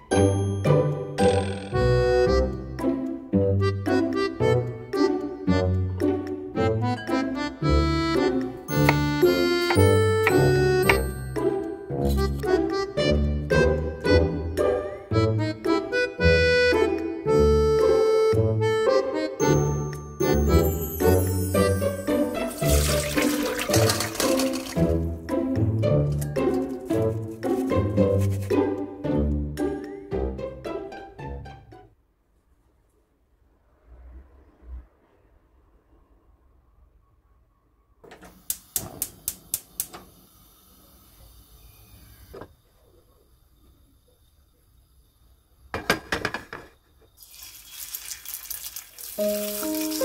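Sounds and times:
background music: 0.0 - 32.1, 49.2 - 50.0
water splashing into metal bowl: 22.5 - 24.9, 47.2 - 50.0
gas hob igniter clicks: 38.4 - 40.1
oil sizzling in hot pan: 47.2 - 50.0.

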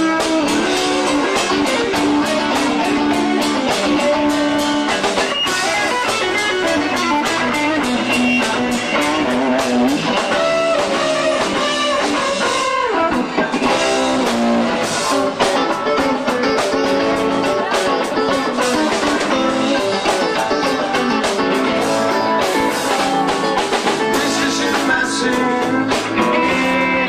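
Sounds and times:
drums: 0.0 - 27.0
lead electric guitar: 0.0 - 27.0
second guitar: 0.0 - 27.0.

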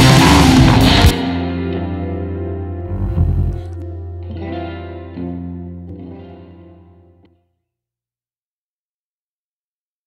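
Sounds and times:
distorted electric guitar chords: 0.0 - 7.2
loud low guitar note: 2.8 - 5.9.

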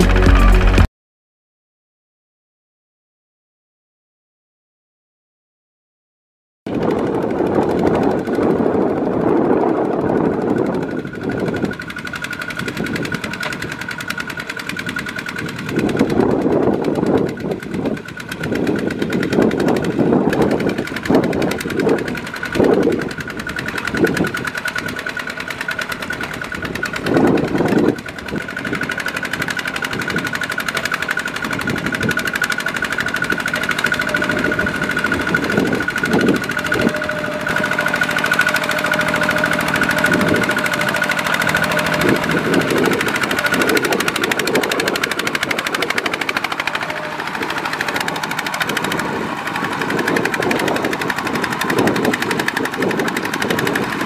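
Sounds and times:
diesel tractor engine chugging: 6.7 - 54.0.

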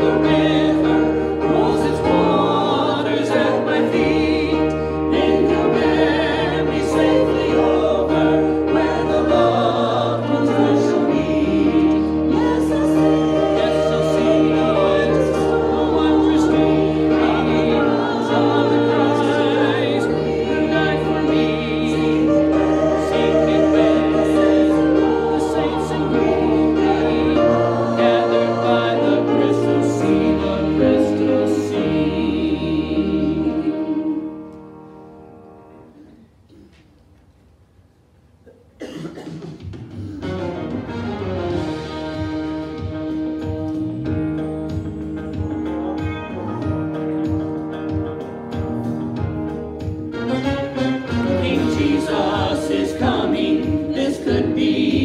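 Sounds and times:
instrumental accompaniment: 0.0 - 36.1, 39.2 - 55.0
congregation singing a hymn: 0.0 - 36.2, 40.2 - 55.0.

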